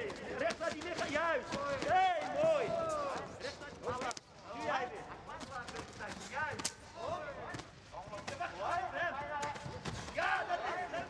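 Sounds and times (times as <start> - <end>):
people shouting instructions: 10.1 - 11.0.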